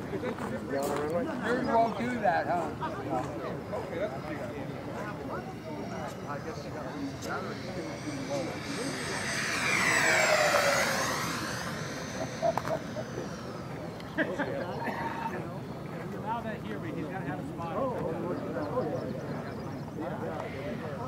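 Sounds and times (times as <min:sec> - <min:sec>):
model jet fans whining: 0:03.4 - 0:16.7.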